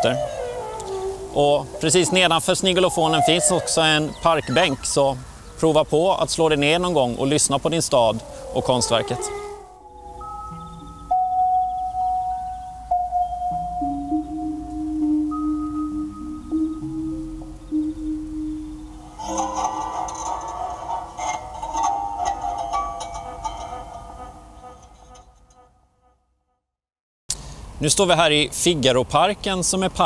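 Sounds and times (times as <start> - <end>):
sustained electronic tones: 8.5 - 25.6.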